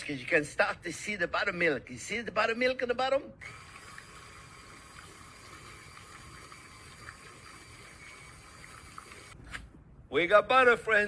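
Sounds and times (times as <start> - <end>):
stand mixer running: 3.4 - 9.4.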